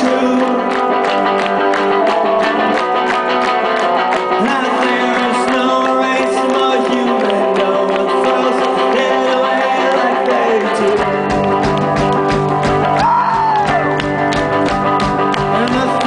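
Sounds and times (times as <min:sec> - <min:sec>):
electric guitars: 0:00.0 - 0:16.0.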